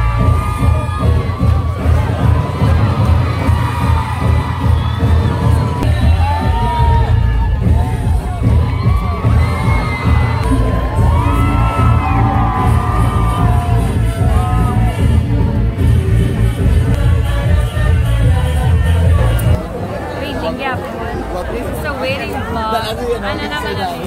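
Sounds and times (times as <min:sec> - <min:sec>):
loud dance music: 0:00.0 - 0:19.9
crowd cheering and shouting: 0:00.0 - 0:24.0.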